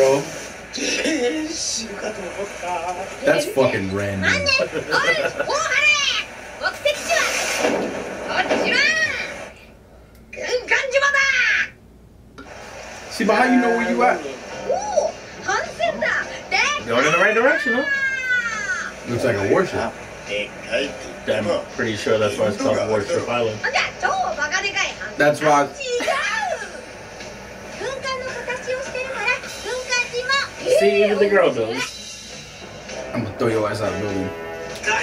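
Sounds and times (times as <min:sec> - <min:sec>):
high-pitched excited dialogue: 0:00.7 - 0:12.0, 0:13.2 - 0:35.0
man speaking: 0:03.2 - 0:04.5, 0:19.0 - 0:23.6
high-pitched cartoon voices: 0:17.8 - 0:19.0.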